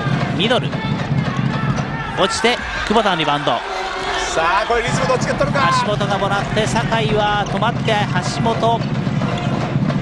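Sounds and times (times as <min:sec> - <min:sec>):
crowd noise: 0:00.0 - 0:10.0
players running on court: 0:00.0 - 0:10.0
commentator calling: 0:00.4 - 0:08.8.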